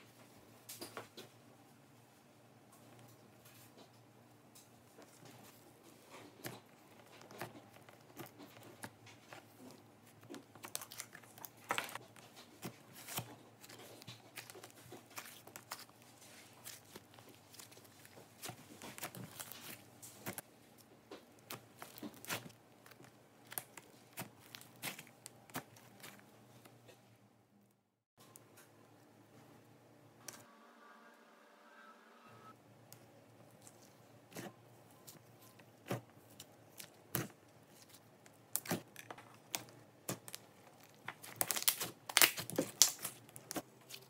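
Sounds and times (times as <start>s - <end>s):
slime crackling and clicking: 36.4s - 44.0s.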